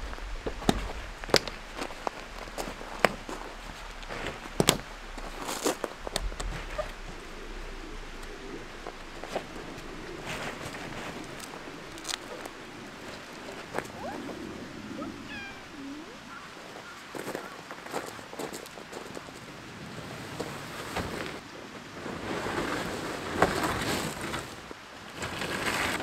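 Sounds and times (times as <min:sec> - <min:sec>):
footsteps on gravel: 0:00.0 - 0:14.5
tent fabric rustling: 0:00.0 - 0:18.6, 0:20.0 - 0:26.0
cat meowing: 0:14.9 - 0:16.4.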